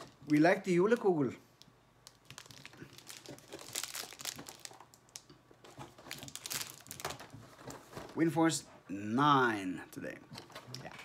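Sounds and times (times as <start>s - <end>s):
plastic packet crinkling: 2.0s - 7.4s.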